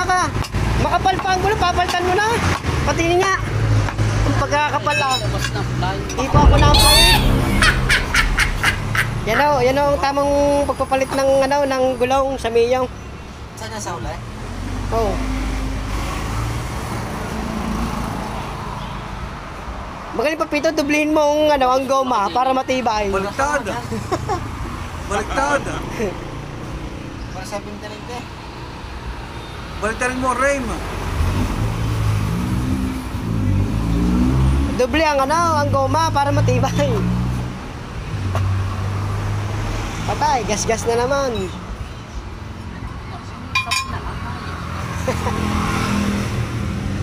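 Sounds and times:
road traffic noise: 0.0 - 47.0
vehicle engine rumble: 6.2 - 11.6.

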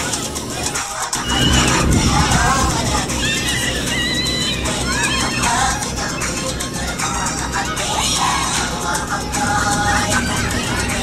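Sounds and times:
high-pitched voices calling out: 0.0 - 11.0
low rumble: 0.3 - 11.0.

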